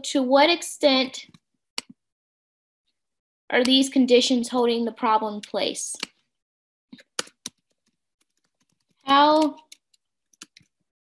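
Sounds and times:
typing on computer keyboard: 0:07.0 - 0:10.8.

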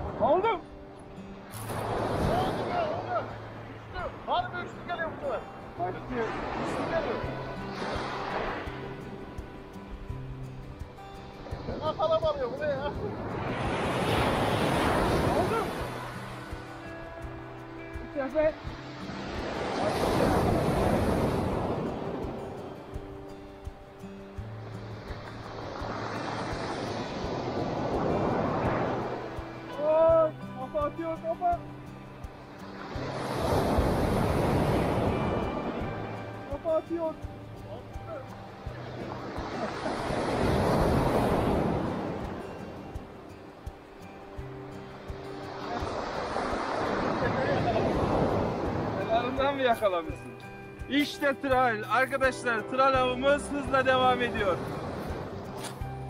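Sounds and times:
background music: 0:00.0 - 0:56.0
waves breaking on pebble beach: 0:01.4 - 0:10.0, 0:11.3 - 0:17.2, 0:18.0 - 0:23.2, 0:24.5 - 0:31.6, 0:32.4 - 0:56.0.

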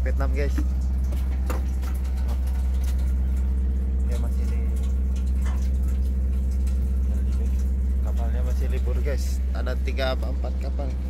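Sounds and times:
ship engine hum: 0:00.0 - 0:11.0.

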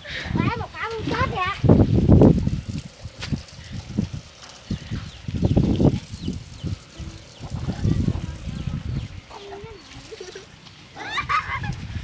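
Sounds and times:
wind rumble: 0:00.1 - 0:10.1, 0:11.1 - 0:12.0.

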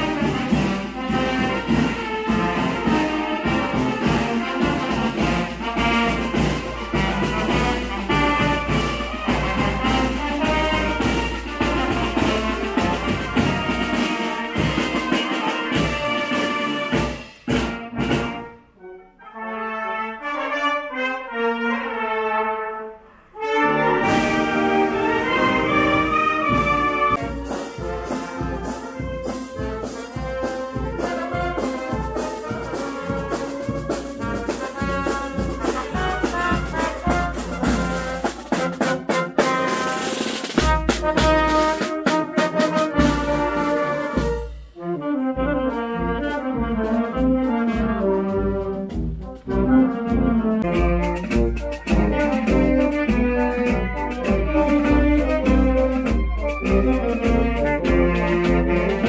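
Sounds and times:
drums: 0:00.0 - 0:18.6, 0:24.0 - 0:59.0
marching band playing: 0:00.0 - 0:59.0.

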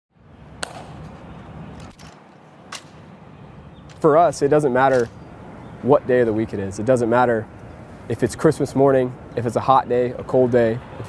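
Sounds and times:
outdoor background hiss: 0:00.2 - 0:11.0.

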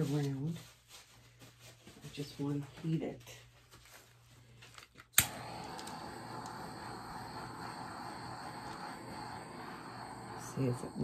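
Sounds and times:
torch igniter clicking: 0:05.1 - 0:11.0
torch flame hissing: 0:05.2 - 0:11.0.

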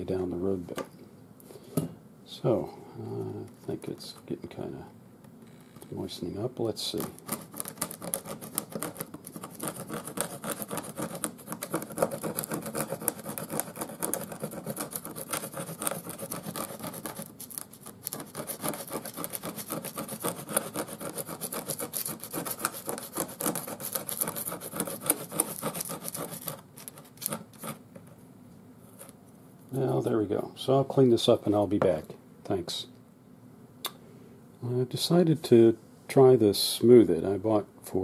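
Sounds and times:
putty knife scraping: 0:07.0 - 0:28.1.

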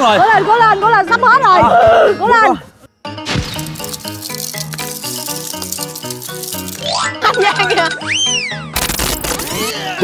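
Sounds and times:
light rhythmic background music: 0:00.0 - 0:10.0.

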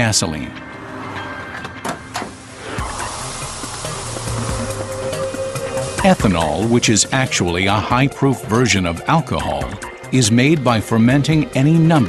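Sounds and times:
soft background music: 0:00.0 - 0:12.0
corn kernels pouring from chute: 0:02.7 - 0:07.8.

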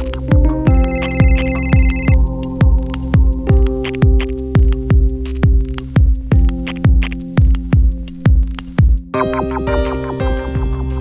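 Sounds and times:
electronic music with kick drum: 0:00.0 - 0:11.0
electronic phone ringtone: 0:00.7 - 0:02.2.

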